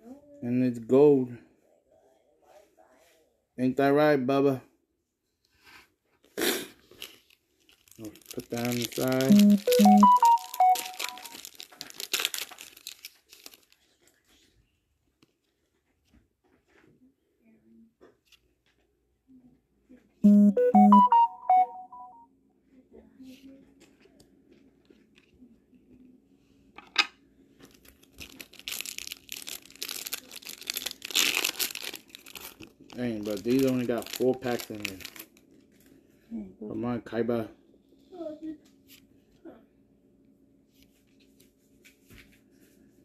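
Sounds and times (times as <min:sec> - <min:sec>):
foil wrappers crinkling: 0:06.8 - 0:14.5, 0:27.6 - 0:35.9.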